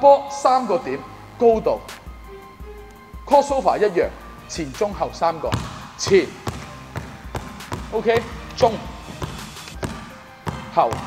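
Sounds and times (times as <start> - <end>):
basketball bouncing on hardwood floor: 5.5 - 11.0.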